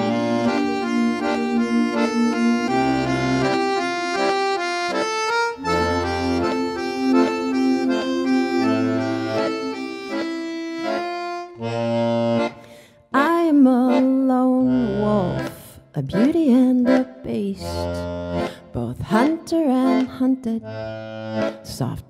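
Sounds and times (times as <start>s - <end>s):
button accordion melody: 0.0s - 22.0s.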